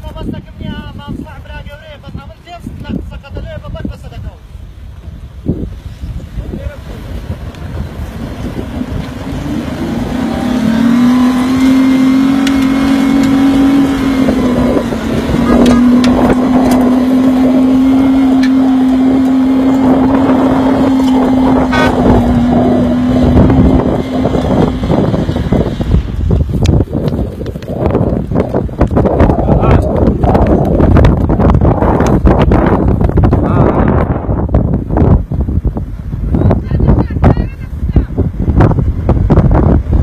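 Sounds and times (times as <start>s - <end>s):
tyres churning loose dirt: 6.4s - 33.5s
engine revving high: 8.4s - 26.2s.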